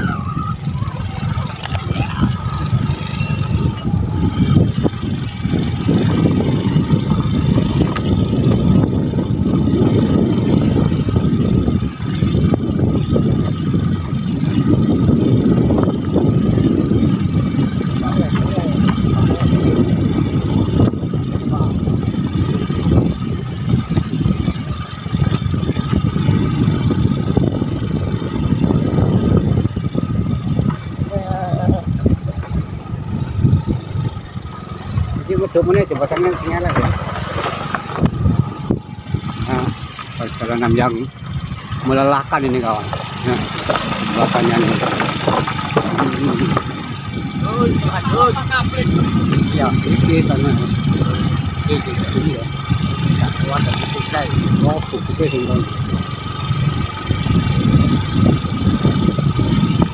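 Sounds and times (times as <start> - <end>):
motorcycle engine running: 0.0 - 59.9
wind on microphone: 0.0 - 59.9.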